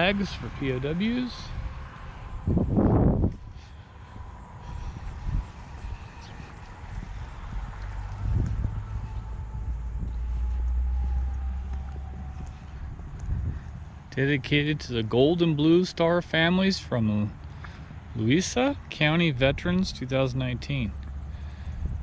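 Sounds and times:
wind rumbling on microphone: 0.0 - 15.5, 19.3 - 22.0
low steady drone: 0.0 - 15.7.

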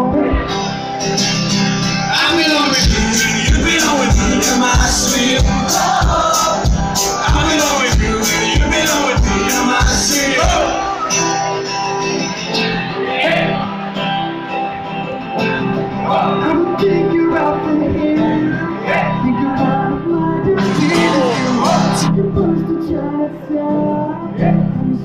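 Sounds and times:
person singing: 0.0 - 0.8, 2.1 - 11.7, 16.0 - 25.0
electric guitar: 0.0 - 25.0
strummed acoustic guitar: 0.0 - 25.0
steady beat: 2.8 - 10.8, 20.6 - 22.1.

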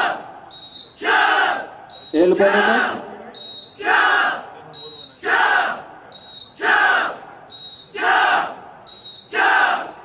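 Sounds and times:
group shouting in unison: 0.0 - 0.4, 1.0 - 1.8, 2.4 - 3.0, 3.8 - 4.5, 5.2 - 5.9, 6.6 - 7.2, 8.0 - 8.6, 9.3 - 10.0.

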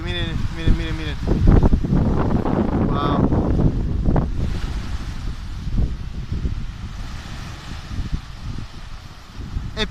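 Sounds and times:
sea washing on shore: 0.0 - 9.9
wind buffeting microphone: 0.0 - 9.9.

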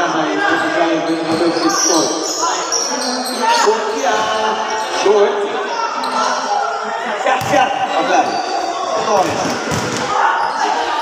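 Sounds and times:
echoing voices: 0.0 - 11.0.

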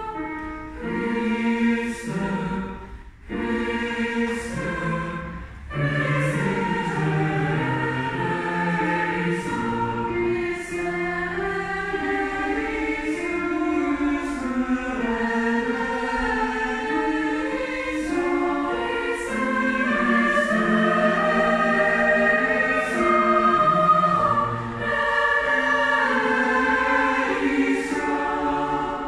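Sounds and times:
choir singing in harmony: 0.0 - 29.0.

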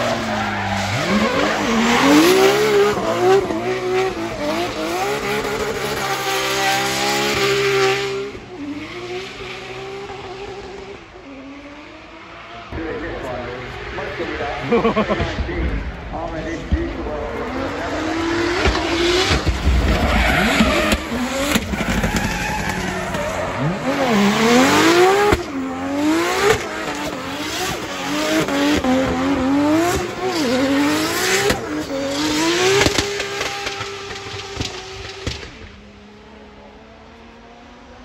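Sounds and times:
car engine revving: 0.0 - 38.0.

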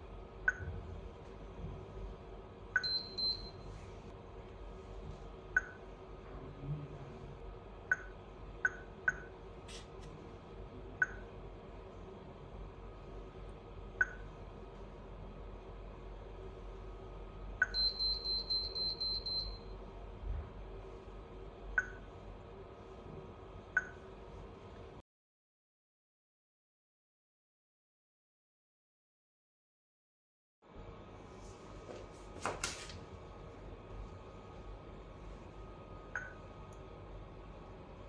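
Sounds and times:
short high-pitched beeps: 2.8 - 3.6, 17.6 - 19.6.

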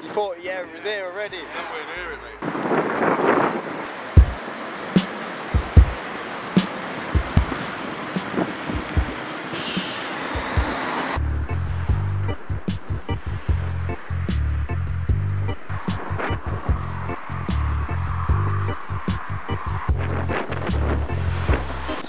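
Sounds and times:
wind and rumble on microphone: 2.4 - 4.4, 11.7 - 22.0
music with steady beat: 4.1 - 22.0.

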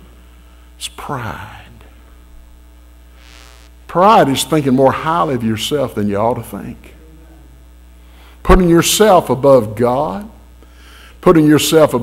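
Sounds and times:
electrical mains hum: 0.0 - 12.0
soft breath: 10.6 - 11.2.

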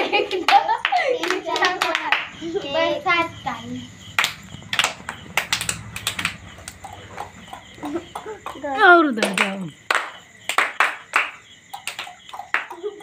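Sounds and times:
children clapping hands: 0.0 - 2.5, 4.1 - 13.0
children calling out: 6.8 - 9.8.

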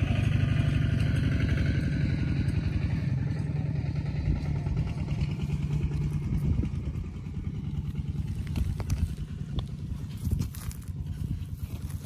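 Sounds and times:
steady low rumble: 0.0 - 12.0
gravel clicking and scraping: 5.2 - 12.0.

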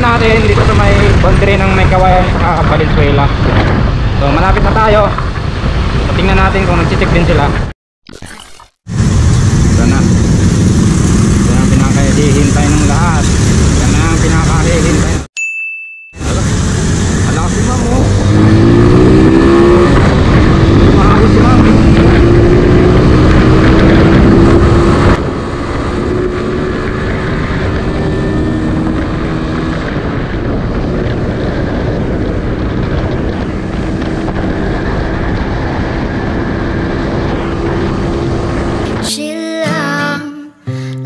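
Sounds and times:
wind rumble on microphone: 0.0 - 7.7, 8.9 - 15.3, 16.2 - 39.1
motorcycle engine accelerating: 8.9 - 15.3, 16.2 - 39.0.

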